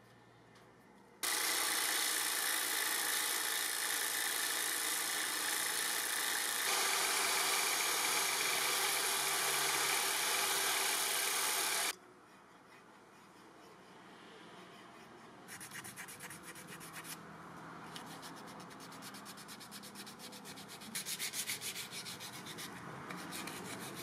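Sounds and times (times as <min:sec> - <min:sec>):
sanding disc motor whine: 0:01.2 - 0:11.9.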